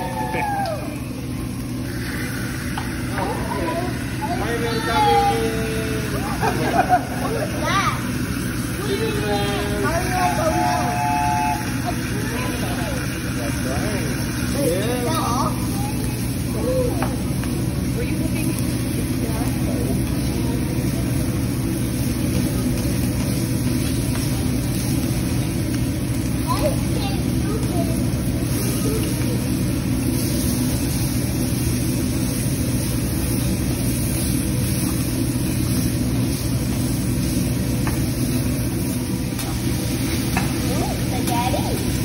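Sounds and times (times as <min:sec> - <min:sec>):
diners chattering: 0:00.0 - 0:42.0
food sizzling on griddle: 0:00.0 - 0:42.0
low fan drone: 0:00.0 - 0:42.0.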